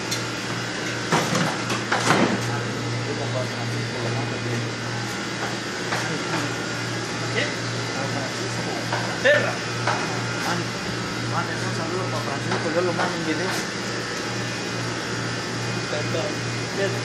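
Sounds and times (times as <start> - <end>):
kitchen machinery hum: 0.0 - 17.0.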